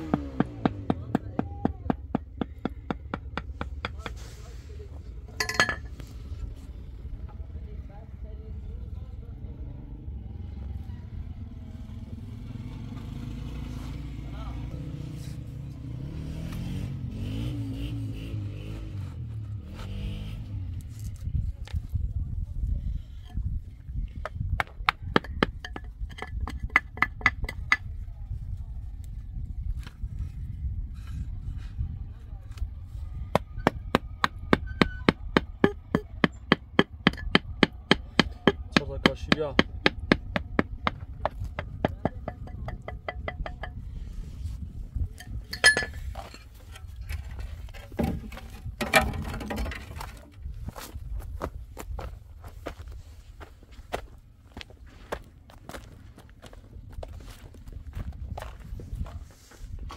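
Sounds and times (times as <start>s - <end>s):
low steady rumble: 0.0s - 16.0s, 20.6s - 59.9s.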